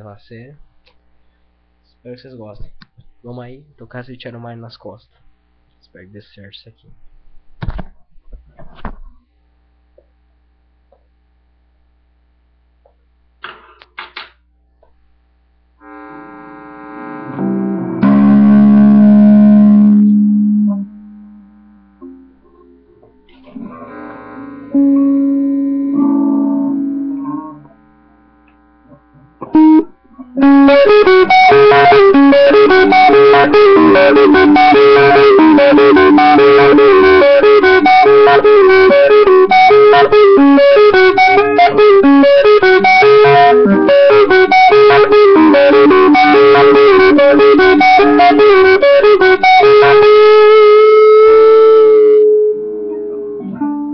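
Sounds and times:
loud electric guitar: 0:15.8 - 0:53.9.

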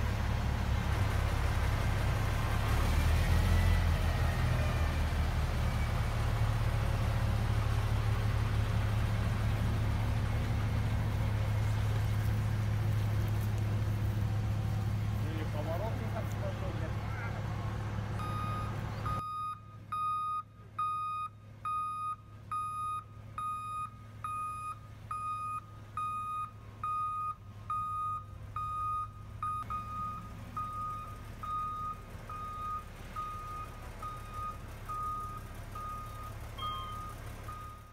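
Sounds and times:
diesel engine running: 0:00.0 - 0:37.9
reversing alarm beeping: 0:18.2 - 0:37.9.

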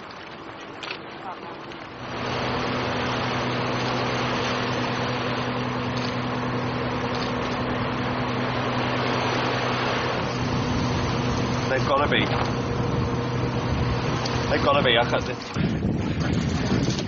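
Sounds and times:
boat engine humming: 0:00.0 - 0:17.0
wind and water rushing: 0:01.9 - 0:17.0.

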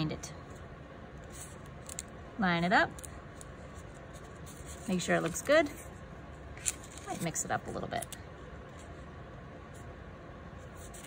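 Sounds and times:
paper rustling: 0:06.6 - 0:07.7.

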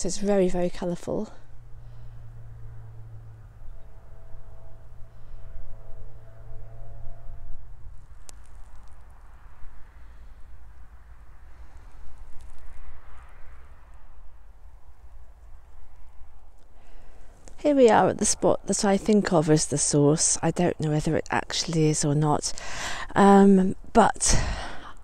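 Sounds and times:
low steady hum: 0:00.0 - 0:25.0.

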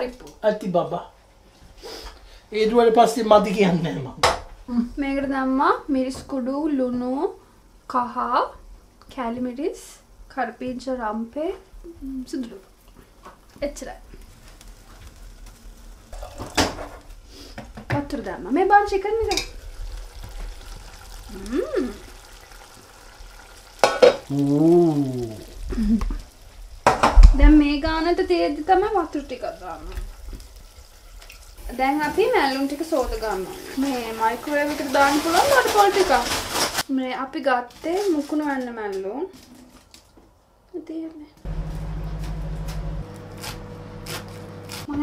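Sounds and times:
faint hiss: 0:00.3 - 0:36.9
kitchenware clattering: 0:16.1 - 0:17.1, 0:23.8 - 0:24.3
woman speaking: 0:17.9 - 0:19.4, 0:21.3 - 0:22.0, 0:27.3 - 0:30.0, 0:31.7 - 0:36.3.

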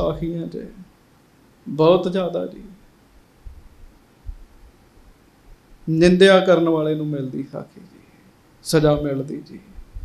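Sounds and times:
man speaking: 0:00.0 - 0:00.9, 0:01.7 - 0:02.8, 0:05.9 - 0:07.9, 0:08.6 - 0:09.7
faint low thuds: 0:03.4 - 0:04.8.

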